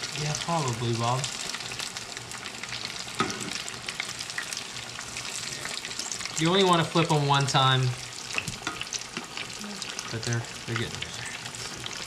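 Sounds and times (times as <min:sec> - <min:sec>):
food deep-frying in oil: 0:00.0 - 0:12.0.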